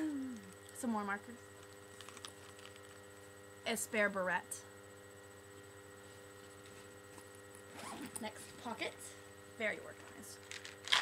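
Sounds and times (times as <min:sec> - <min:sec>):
steady electrical hum: 0:00.0 - 0:11.0
handbag zipper being pulled open: 0:07.7 - 0:08.2.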